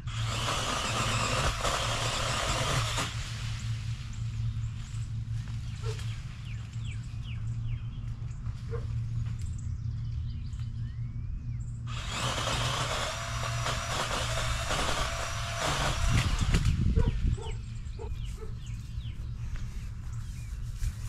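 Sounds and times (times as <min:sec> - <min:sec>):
electric pole saw cutting limb: 0:00.0 - 0:04.1, 0:11.9 - 0:17.5
birds chirping: 0:03.5 - 0:12.9, 0:16.6 - 0:21.0.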